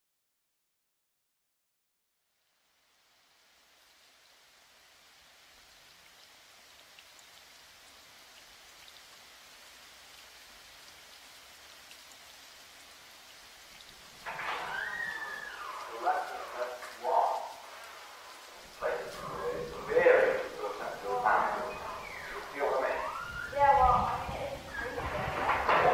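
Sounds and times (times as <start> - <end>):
steady rain pattering: 2.1 - 25.9
voices: 14.2 - 25.9.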